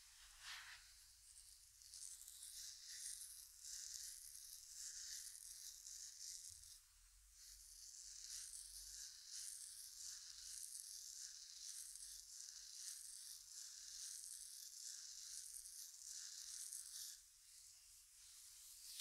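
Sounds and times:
fingers rustling in hair: 0:00.0 - 0:06.8, 0:07.4 - 0:19.0.

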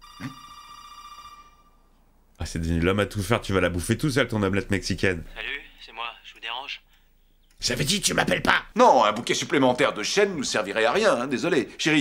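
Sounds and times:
phone ringtone electronic tone: 0:00.0 - 0:01.9.

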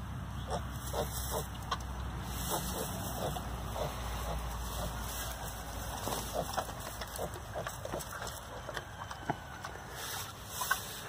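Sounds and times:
piglet grunting: 0:00.5 - 0:01.6, 0:02.4 - 0:05.1, 0:06.0 - 0:08.4.

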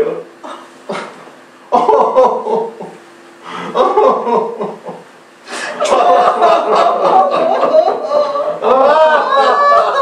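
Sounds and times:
chuckling laughter: 0:03.6 - 0:10.0
voices sobbing comically: 0:07.6 - 0:10.0.

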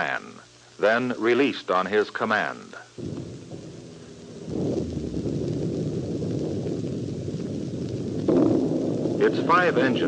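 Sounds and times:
rocket engines rumbling: 0:03.0 - 0:10.0.

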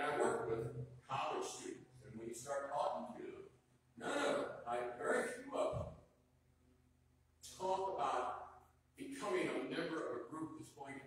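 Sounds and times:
man speaking: 0:00.0 - 0:05.9, 0:07.4 - 0:11.0.

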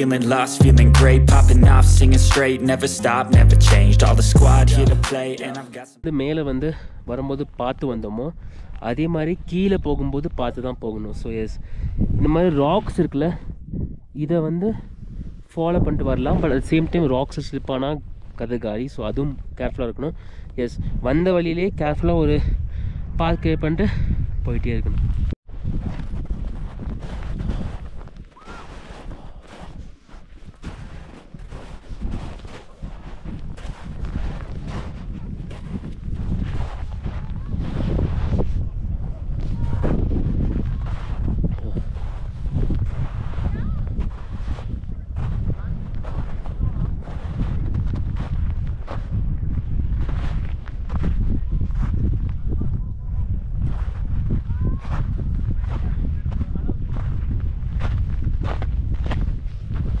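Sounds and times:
strong wind buffeting microphone: 0:08.4 - 0:18.4, 0:19.2 - 1:00.0.

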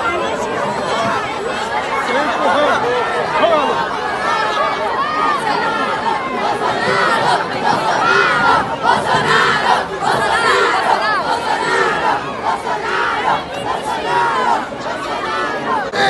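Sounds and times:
crowd of students shouting and cheering: 0:00.0 - 0:16.0.

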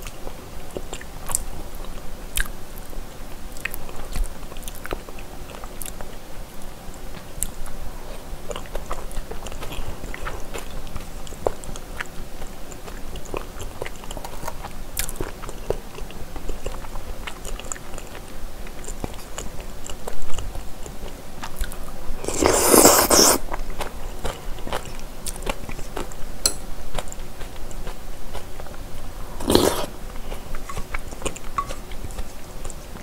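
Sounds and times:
wet chewing: 0:21.4 - 0:26.1, 0:29.4 - 0:32.8
slurping: 0:22.2 - 0:23.4, 0:29.4 - 0:30.0.

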